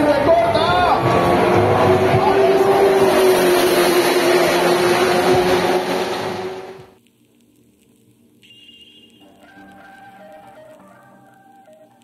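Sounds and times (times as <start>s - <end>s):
racetrack noise with low hum: 0.0s - 7.1s.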